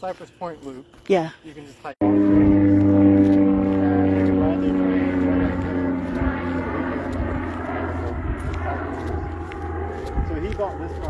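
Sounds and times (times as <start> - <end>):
engine drone: 2.0 - 11.0.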